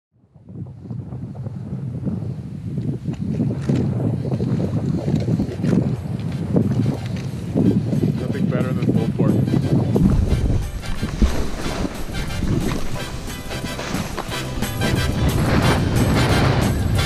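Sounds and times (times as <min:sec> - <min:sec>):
wind buffeting microphone: 0:00.2 - 0:17.0.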